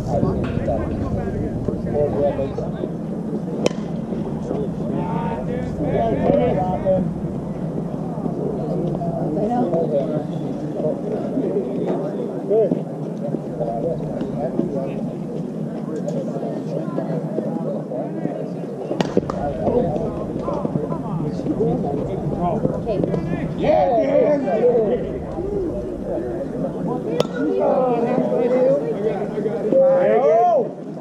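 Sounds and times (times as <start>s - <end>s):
steady low hum: 0.0s - 17.3s, 19.0s - 29.7s
indistinct chatter: 0.0s - 31.0s.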